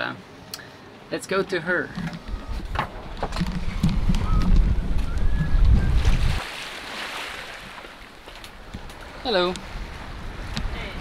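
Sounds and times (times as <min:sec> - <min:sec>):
wind buffeting microphone: 0:02.0 - 0:06.5
water rushing along hull: 0:03.1 - 0:11.0.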